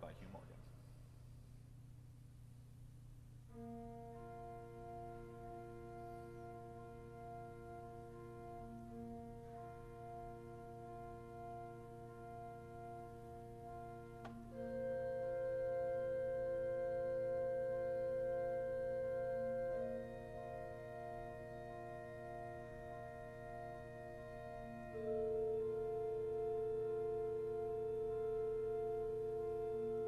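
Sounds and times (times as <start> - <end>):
pipe organ playing slowly: 3.5 - 30.0.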